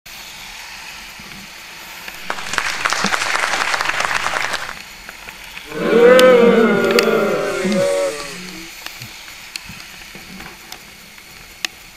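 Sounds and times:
rain pattering on windscreen: 0:01.3 - 0:05.7.

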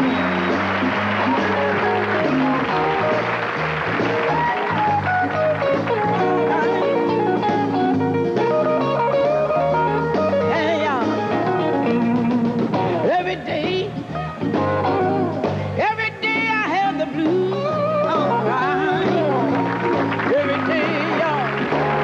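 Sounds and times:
live band playing slow r and b: 0:00.0 - 0:22.0
person singing: 0:08.4 - 0:12.0, 0:12.7 - 0:14.1, 0:15.6 - 0:19.6, 0:20.2 - 0:21.9.

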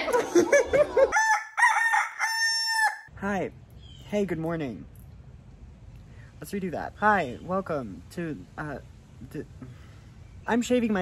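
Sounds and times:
rooster crowing: 0:00.8 - 0:03.1.

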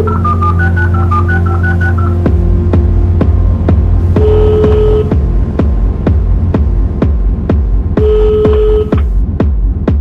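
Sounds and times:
held synth note: 0:00.0 - 0:05.3
heavy bass line: 0:00.0 - 0:10.0
techno kick drum: 0:02.2 - 0:10.0.

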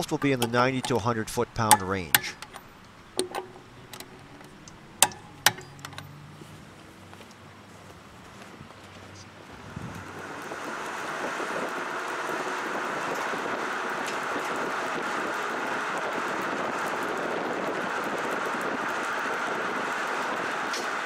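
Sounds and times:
road noise and wind: 0:00.0 - 0:21.0
tyres rolling on asphalt: 0:00.0 - 0:21.0.

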